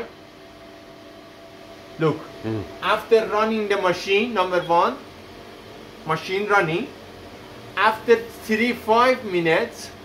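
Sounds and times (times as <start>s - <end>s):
dry-cleaning machine humming: 2.0s - 10.0s.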